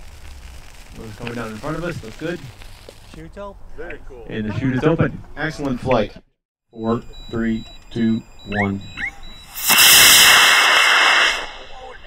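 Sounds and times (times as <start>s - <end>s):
rocket motor rushing: 9.5s - 11.8s.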